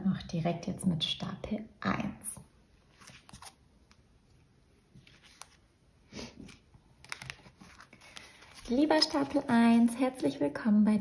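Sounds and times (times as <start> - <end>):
soft rustle: 2.8 - 9.5.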